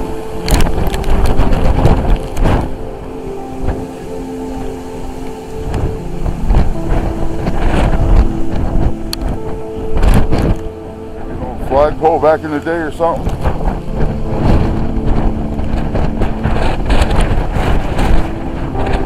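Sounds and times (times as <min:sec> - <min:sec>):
faint steady tones: 0:00.0 - 0:19.0
wind buffeting microphone: 0:00.0 - 0:19.0.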